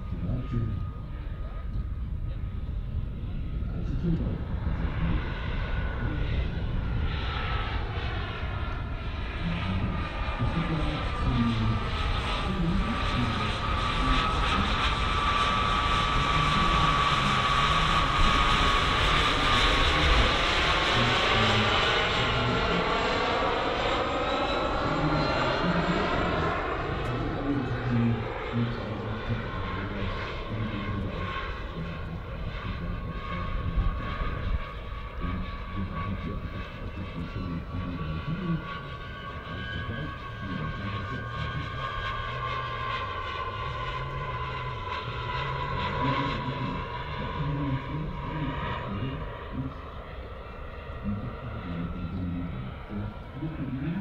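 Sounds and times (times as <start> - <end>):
model jet turbines whining: 0.0 - 54.0.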